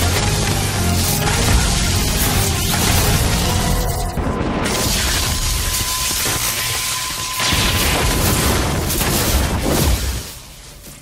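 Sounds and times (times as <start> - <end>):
electric crackling and zapping: 0.0 - 11.0.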